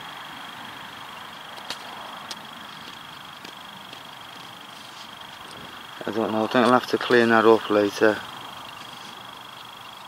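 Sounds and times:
faint high-pitched whine: 0.0s - 10.0s
outdoor background hiss: 0.0s - 10.0s.

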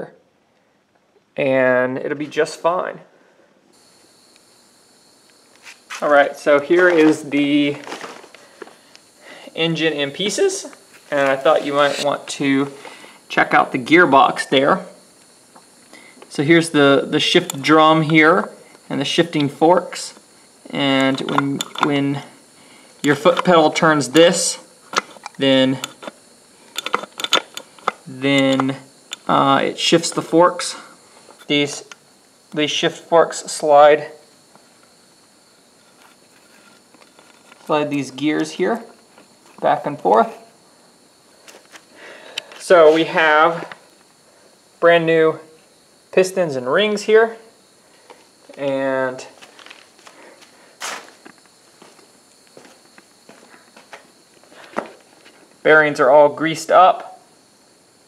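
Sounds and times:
soft footsteps: 5.4s - 8.8s, 10.6s - 12.3s, 49.2s - 55.5s
scuff: 5.5s - 8.8s, 10.6s - 12.2s, 49.3s - 55.4s
handling noises: 5.5s - 9.0s, 10.4s - 13.0s, 23.0s - 29.4s
gearbox metal clicks: 21.0s - 21.9s, 24.9s - 29.3s.

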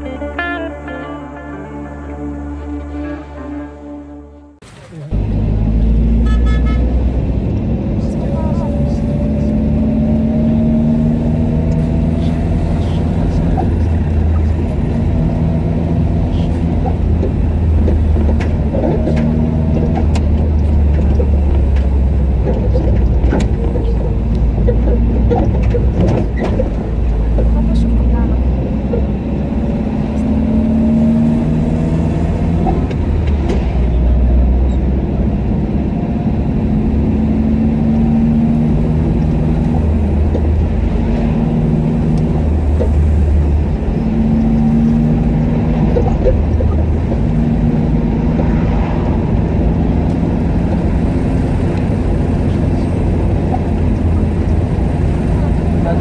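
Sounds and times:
car engine: 0.0s - 56.0s
road rumble: 0.0s - 56.0s.

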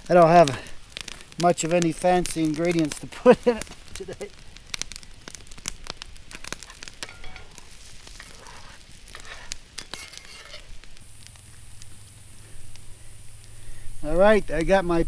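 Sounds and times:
eggs sizzling in oil: 0.0s - 15.0s
scraping and tapping in skillet: 5.9s - 12.1s.

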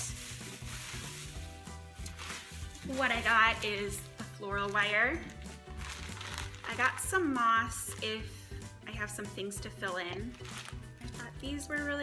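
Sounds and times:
plastic packaging rustling: 0.0s - 8.2s, 10.2s - 11.2s
background music with bass line: 0.0s - 12.0s.

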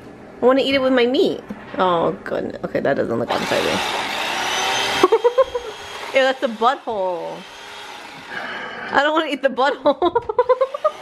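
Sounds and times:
electric carving knife buzzing: 3.3s - 9.2s, 10.5s - 11.0s.

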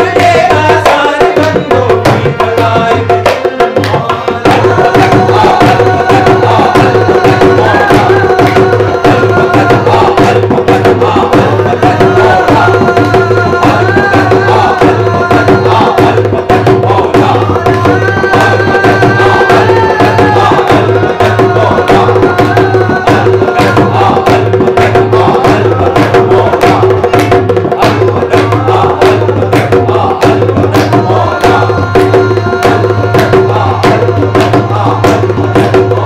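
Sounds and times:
hand drum beat: 0.0s - 36.0s
men singing together: 0.0s - 36.0s.

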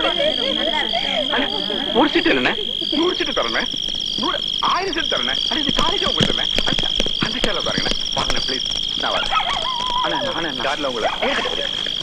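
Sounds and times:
frogs croaking: 0.0s - 12.0s
high-pitched insect drone: 0.0s - 12.0s
sharp taps: 5.1s - 10.5s.

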